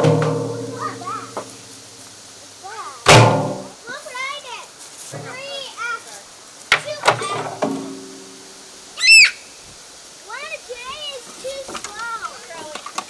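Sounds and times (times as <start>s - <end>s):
children calling and squealing: 0.0s - 1.7s, 2.4s - 7.7s, 8.4s - 13.0s
child shrieking: 6.9s - 7.6s, 9.0s - 9.5s.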